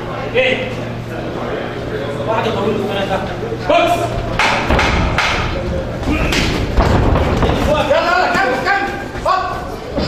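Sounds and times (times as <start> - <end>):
footwork on ring canvas: 4.1 - 10.0.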